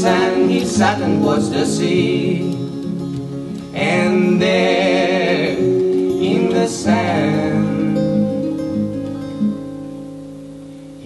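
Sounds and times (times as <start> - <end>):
acoustic guitar plucked notes: 0.0 - 11.0.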